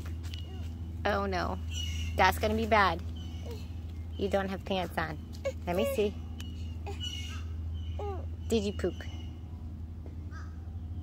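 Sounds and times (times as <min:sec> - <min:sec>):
low outdoor hum: 0:00.0 - 0:11.0.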